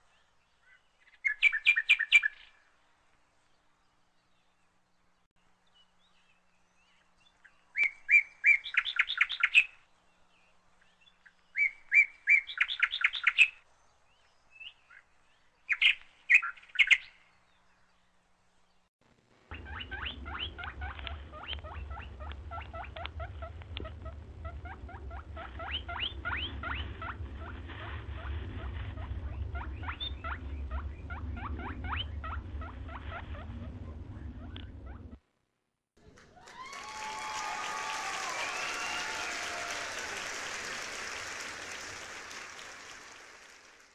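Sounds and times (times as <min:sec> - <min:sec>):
low steady rumble: 0:19.1 - 0:35.4
chorus of chirping birds: 0:19.5 - 0:34.8.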